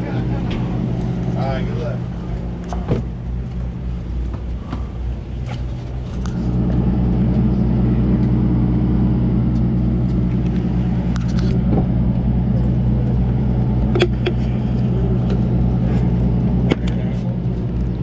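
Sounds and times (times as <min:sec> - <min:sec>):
boat diesel engine running: 0:00.0 - 0:18.0.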